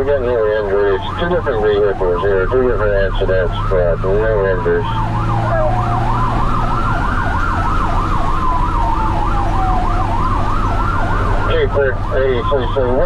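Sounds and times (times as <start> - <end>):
engine and road hum: 0.0 - 13.0
siren wail: 0.0 - 13.0
siren yelp: 0.0 - 13.0.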